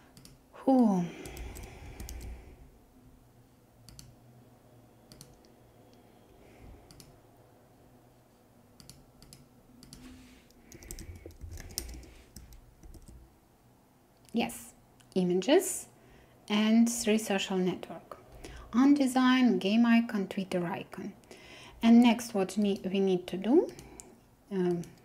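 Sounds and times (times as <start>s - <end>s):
keyboard and mouse clicks: 0.1s - 0.4s, 1.2s - 2.4s, 3.9s - 4.2s, 5.1s - 5.5s, 6.9s - 7.1s, 8.8s - 10.1s, 10.7s - 13.2s, 24.7s - 25.0s.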